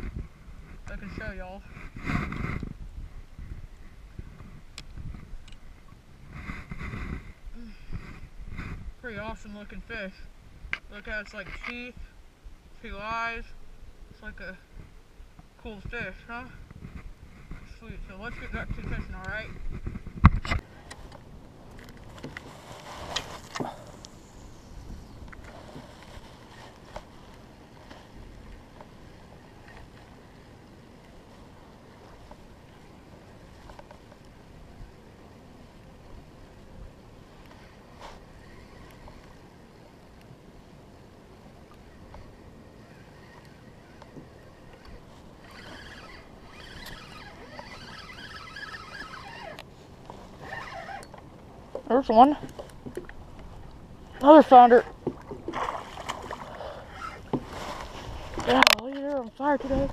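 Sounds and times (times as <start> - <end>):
knocks and clicks of rod and reel: 4.4 - 7.0, 16.7 - 24.2, 41.7 - 54.3, 56.3 - 59.9
water lapping against kayak: 18.2 - 59.9
rattly whirring of fishing reel: 37.5 - 40.1, 41.8 - 49.7, 50.3 - 51.3, 56.6 - 57.3.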